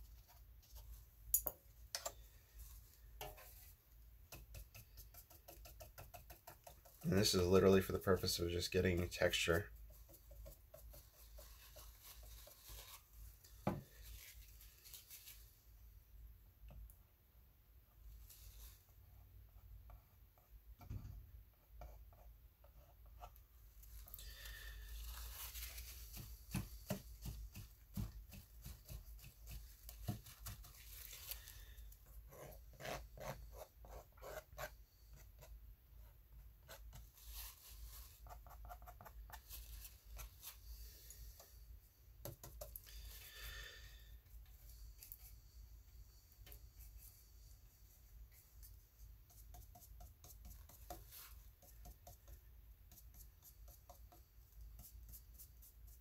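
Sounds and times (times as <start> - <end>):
paintbrush scrubbing on paper: 4.4 - 13.2, 13.9 - 15.6, 23.8 - 34.8, 36.7 - 41.5, 46.7 - 56.0.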